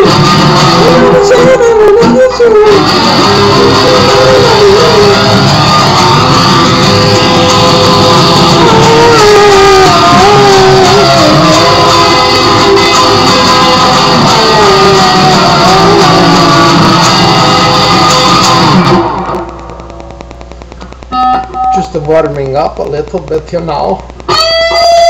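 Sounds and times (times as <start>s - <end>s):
electric guitar lead: 0.0s - 25.0s.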